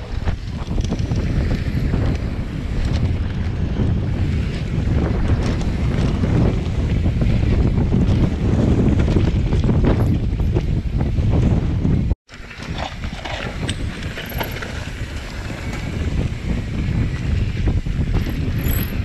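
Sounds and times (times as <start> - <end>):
bike rattles and clicks: 0.0 - 19.0
bike tyre rumble: 0.0 - 19.0
wind buffeting microphone: 0.0 - 19.0.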